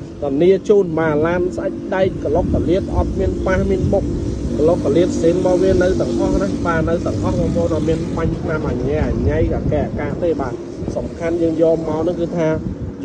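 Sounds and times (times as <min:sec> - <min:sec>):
constant low hum: 0:00.0 - 0:13.0
man talking: 0:00.1 - 0:13.0.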